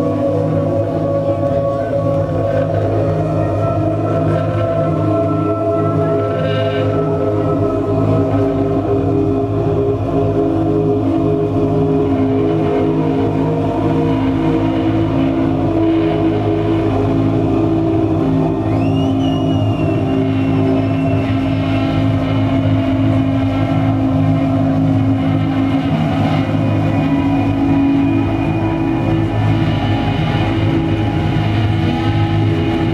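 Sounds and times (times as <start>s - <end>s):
band playing droning ambient music: 0.0s - 32.9s.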